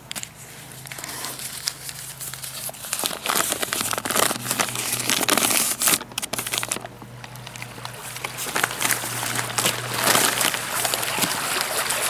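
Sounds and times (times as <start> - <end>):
paper crinkling: 0.0 - 12.0.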